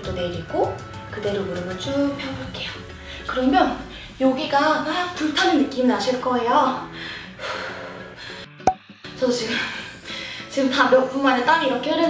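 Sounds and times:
faint background music: 0.0 - 12.0
woman breathing hard: 6.9 - 8.6.

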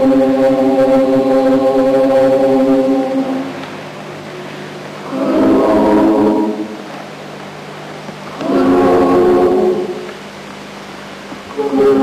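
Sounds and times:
women's choir singing: 5.0 - 6.8, 8.4 - 10.1, 11.6 - 12.0.

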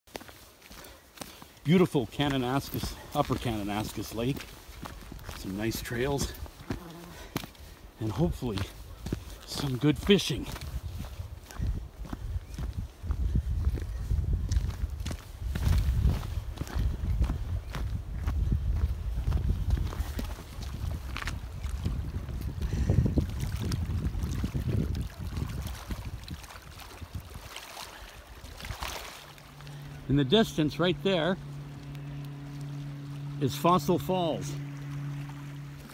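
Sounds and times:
footsteps: 0.1 - 23.7
wind rumble on microphone: 2.2 - 35.9.

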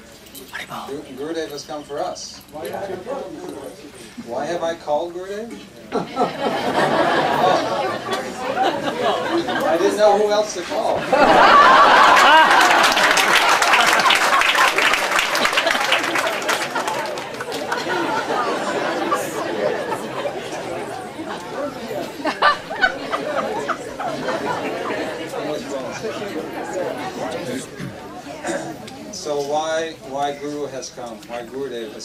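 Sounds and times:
murmur of voices: 0.0 - 32.0
audience laughing: 5.9 - 28.8.

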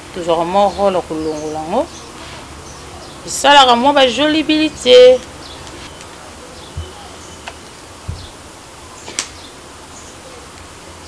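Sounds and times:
low background noise: 0.0 - 11.0
soft low thump: 6.7 - 7.1, 8.0 - 8.4.

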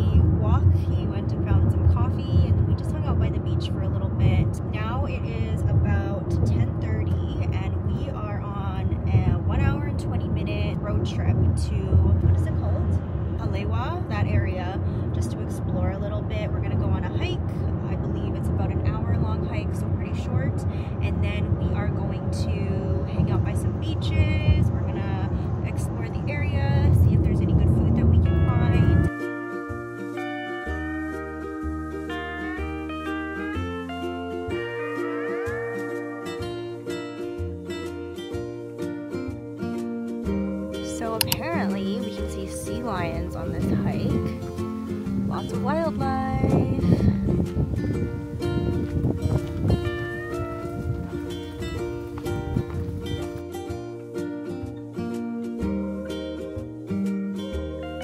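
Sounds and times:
car cabin road and engine rumble: 0.0 - 29.0
voices: 0.0 - 29.1, 40.8 - 44.4, 45.3 - 47.0
music: 0.0 - 58.0.

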